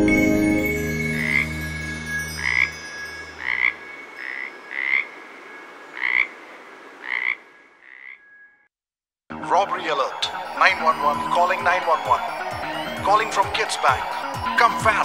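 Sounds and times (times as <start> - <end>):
soft music: 0.0 - 4.2, 9.3 - 15.0
thin steady high tone: 0.0 - 5.9, 9.8 - 15.0
frogs croaking: 1.2 - 8.7, 10.1 - 15.0.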